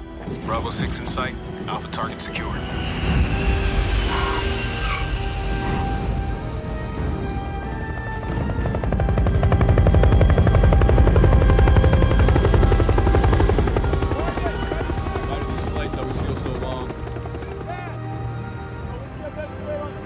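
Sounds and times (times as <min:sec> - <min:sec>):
film music score: 0:00.0 - 0:20.0
helicopter rotor chopping: 0:00.1 - 0:19.3.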